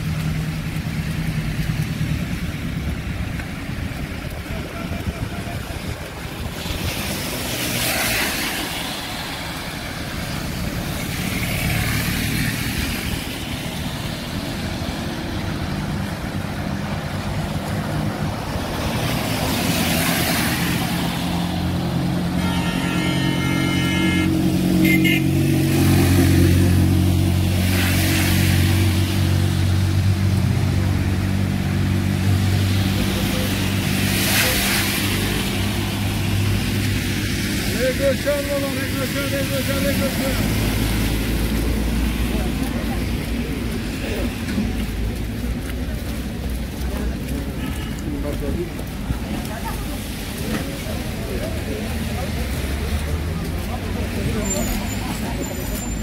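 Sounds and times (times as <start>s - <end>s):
indistinct voices of passersby: 0.0s - 56.0s
tyre hiss on wet road: 4.8s - 29.7s, 31.6s - 45.0s.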